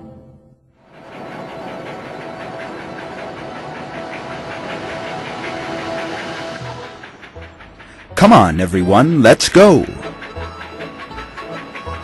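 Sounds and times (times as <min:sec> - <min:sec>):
cartoon steam train chugging: 0:00.8 - 0:12.0.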